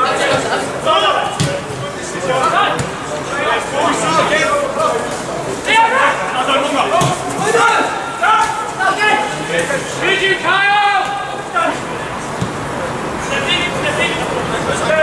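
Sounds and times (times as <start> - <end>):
players shouting: 0.0 - 15.0.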